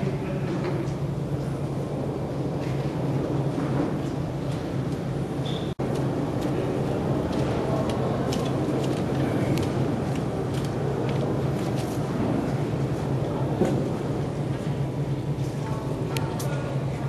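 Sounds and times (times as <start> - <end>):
low hum of hall room noise: 0.0 - 17.0.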